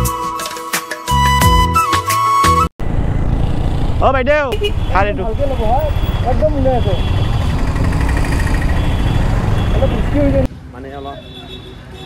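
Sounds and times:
motorcycle road noise: 0:02.8 - 0:11.1
man talking: 0:04.0 - 0:07.1, 0:09.8 - 0:11.2.

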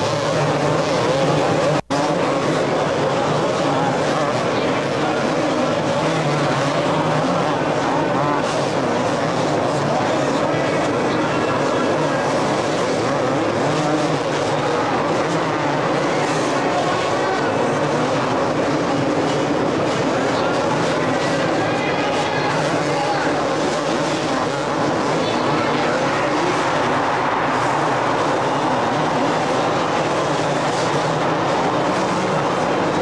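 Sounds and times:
motocross bikes revving: 0:00.0 - 0:33.0.

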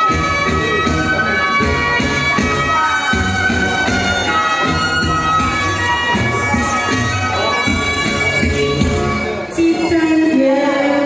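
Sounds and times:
wind instrument melody: 0:00.0 - 0:11.0.

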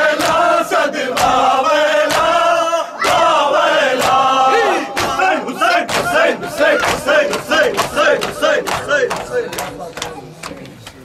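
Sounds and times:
men chanting in unison: 0:00.0 - 0:10.7
hands slapping chests: 0:04.0 - 0:04.3, 0:05.0 - 0:11.0.

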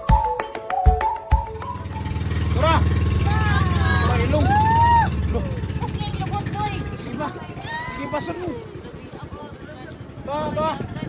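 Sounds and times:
boat engine humming: 0:01.3 - 0:11.0
people exclaiming: 0:02.5 - 0:08.9.

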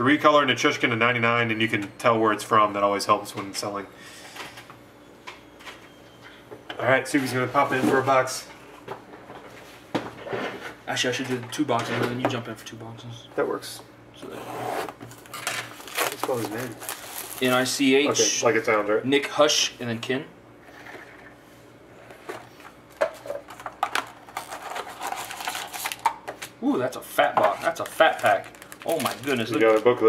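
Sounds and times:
man speaking: 0:17.4 - 0:20.3, 0:26.6 - 0:30.0.

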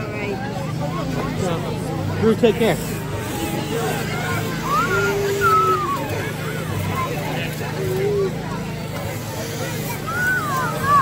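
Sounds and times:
crowd chatter: 0:00.0 - 0:11.0
power tool cutting ice: 0:02.6 - 0:11.0
children's voices: 0:02.9 - 0:11.0.

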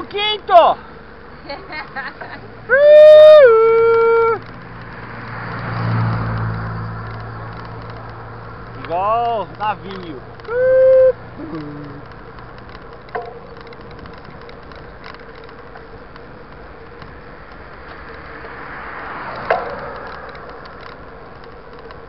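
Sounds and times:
bicycle tyres on paved road: 0:00.0 - 0:22.0
wind noise: 0:03.4 - 0:22.0
car passing close by: 0:04.4 - 0:09.0, 0:17.9 - 0:21.1.

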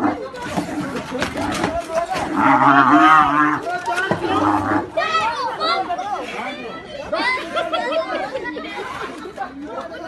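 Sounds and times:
people talking and shouting: 0:00.0 - 0:10.0.

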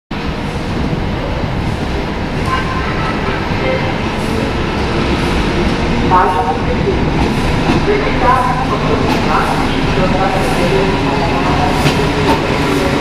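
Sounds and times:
diesel locomotive rumbling: 0:00.1 - 0:13.0.

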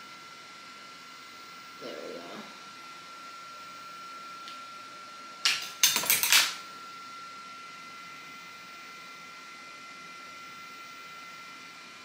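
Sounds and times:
makeup tools clattering on tabletop: 0:05.4 - 0:06.6.

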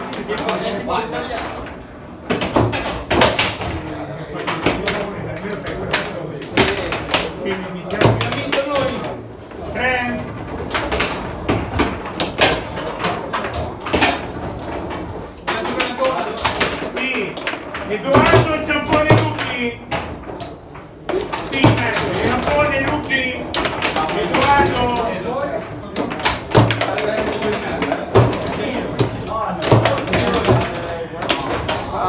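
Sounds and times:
foosball ball knocks: 0:00.0 - 0:09.5, 0:10.2 - 0:32.0
people talking in background: 0:00.0 - 0:11.4, 0:12.2 - 0:32.0.

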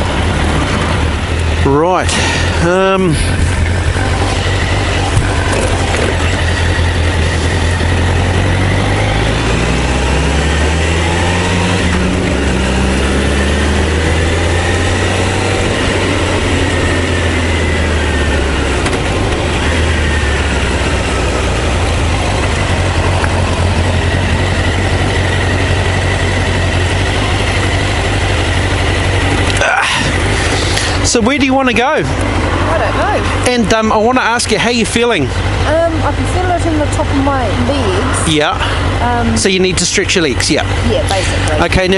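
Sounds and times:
wind rushing over microphone: 0:00.0 - 0:31.1
motorcycle engine accelerating: 0:00.0 - 0:41.9.

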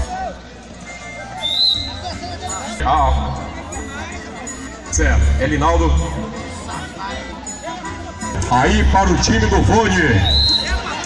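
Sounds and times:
background music: 0:00.0 - 0:11.0
crowd chatter: 0:00.0 - 0:11.0
referee's whistle blast: 0:01.4 - 0:02.1, 0:10.1 - 0:11.0.

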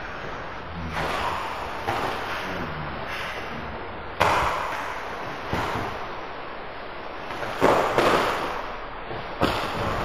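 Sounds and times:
thumps on mat: 0:07.3 - 0:10.0.

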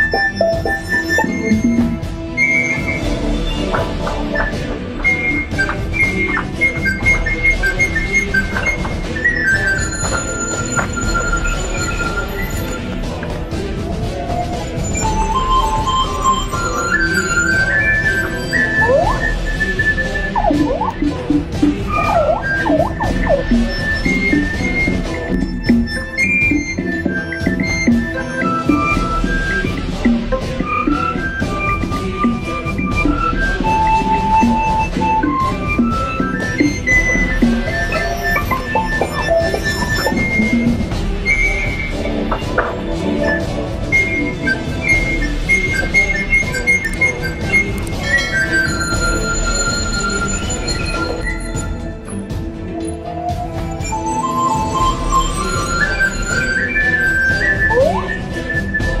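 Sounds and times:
instrumental background music: 0:00.0 - 0:59.0.

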